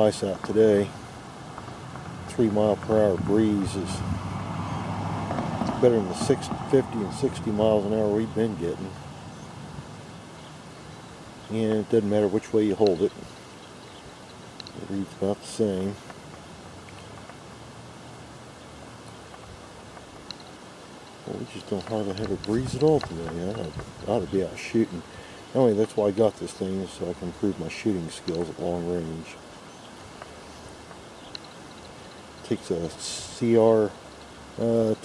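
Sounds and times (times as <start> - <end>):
breeze blowing across microphone: 0.0 - 35.0
outdoor background noise: 0.0 - 35.0.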